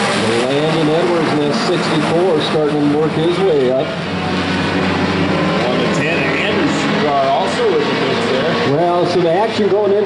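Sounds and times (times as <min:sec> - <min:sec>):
racing car engines droning: 0:00.0 - 0:10.0.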